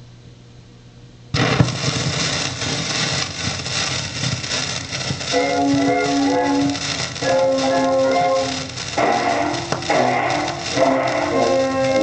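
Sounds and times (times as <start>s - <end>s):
record hiss and crackle: 0.0s - 12.0s.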